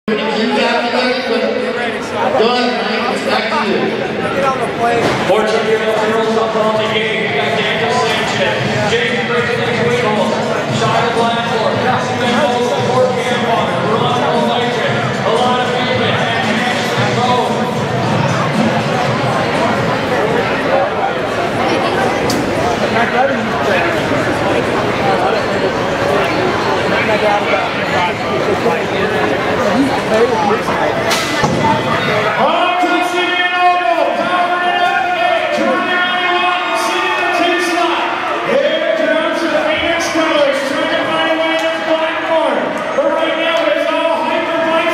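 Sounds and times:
crowd noise in a large hall: 0.0s - 44.9s
man talking over public address: 0.0s - 44.9s
announcer over public address: 0.1s - 18.3s.

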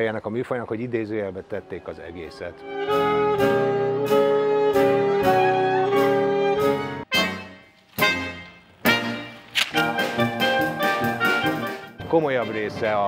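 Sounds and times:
jazz band with saxophones: 1.3s - 13.0s.

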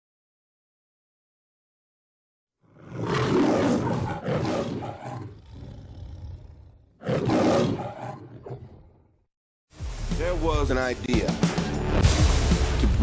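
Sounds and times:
lion roaring: 2.6s - 9.2s.

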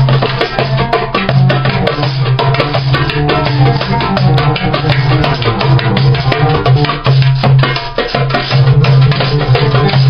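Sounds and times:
hand drum fast rhythm: 0.0s - 10.0s.

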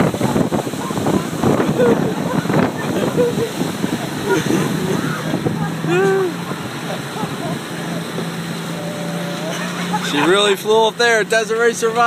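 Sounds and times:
motorboat engine drone: 0.0s - 12.0s
wake water noise: 0.0s - 12.0s
wind: 0.0s - 12.0s.

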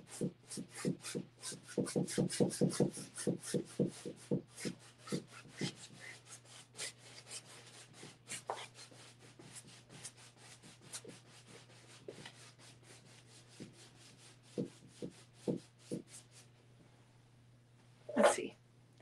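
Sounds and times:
paintbrush brushing on canvas: 3.5s - 16.5s.

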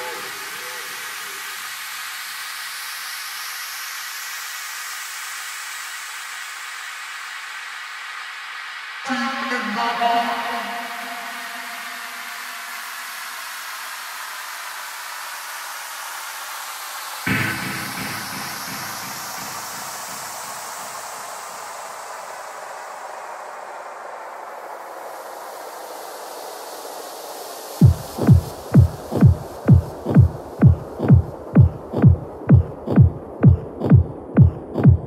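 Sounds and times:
synthesized white-noise sweep: 0.0s - 9.2s, 10.1s - 35.0s.

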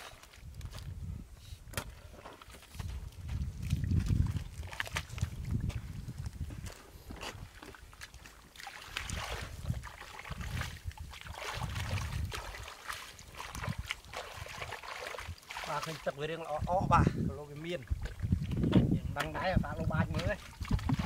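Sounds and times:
hands splashing in mud and water: 1.7s - 6.0s, 7.2s - 16.2s, 20.0s - 21.0s.

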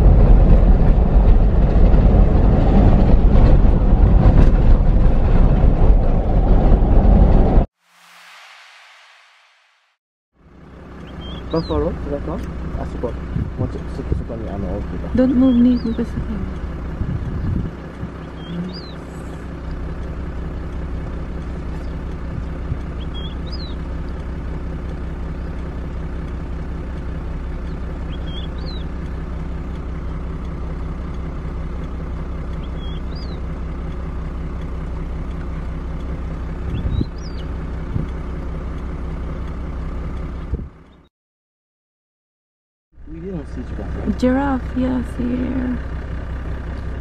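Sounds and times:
vehicle engine idling: 10.4s - 41.1s, 43.0s - 47.0s.

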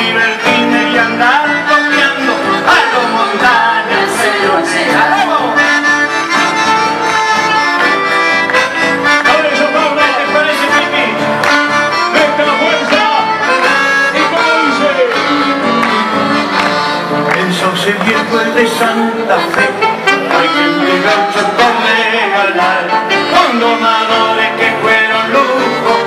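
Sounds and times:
folk band playing instrumental: 0.0s - 26.0s.

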